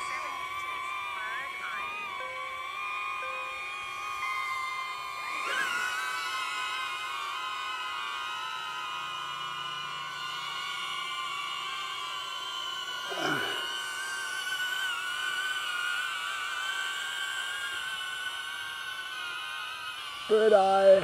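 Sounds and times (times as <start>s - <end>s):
falling pitch sweep: 0.0s - 15.6s
drone propellers whining: 0.0s - 21.0s.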